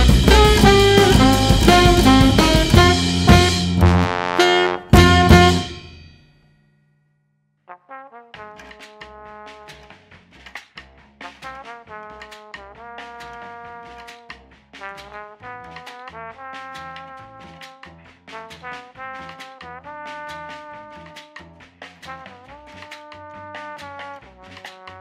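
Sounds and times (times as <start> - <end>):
jazz band playing: 0.0 - 6.0, 8.4 - 10.2, 11.2 - 25.0.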